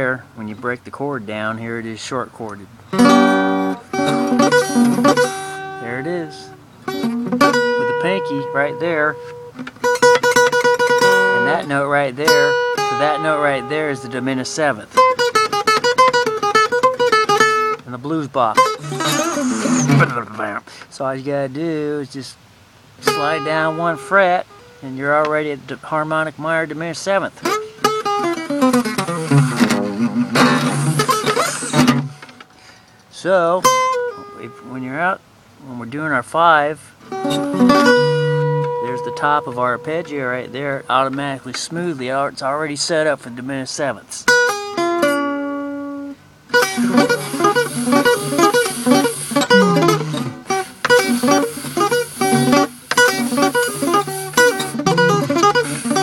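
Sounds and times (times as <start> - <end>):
acoustic guitar arpeggio: 0.0 - 22.0, 23.0 - 56.0
man making wordless vocal sound: 3.4 - 6.6, 7.8 - 9.4, 11.1 - 15.0, 17.9 - 22.4, 23.0 - 27.5, 34.3 - 37.0, 38.8 - 44.3.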